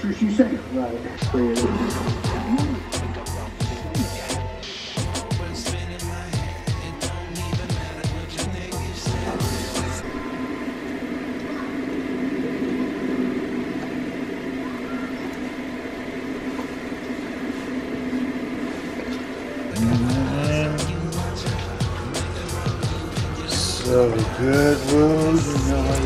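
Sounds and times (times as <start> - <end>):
sustained droning tones: 0.0 - 5.0, 8.2 - 26.0
music with beat and sliding notes: 1.2 - 10.1, 19.7 - 26.0.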